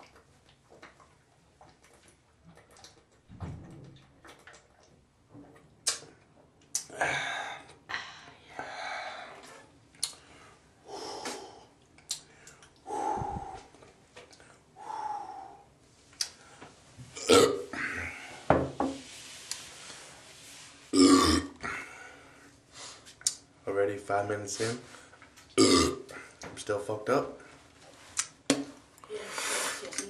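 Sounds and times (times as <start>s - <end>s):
man breathing hard: 6.9s - 9.5s, 10.3s - 13.8s, 14.8s - 15.8s
man belching: 17.2s - 17.8s, 21.0s - 21.6s, 25.6s - 26.1s.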